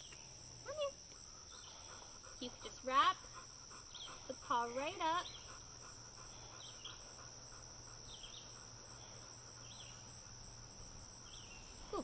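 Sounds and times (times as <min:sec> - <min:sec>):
high insect trill: 0:00.0 - 0:12.0.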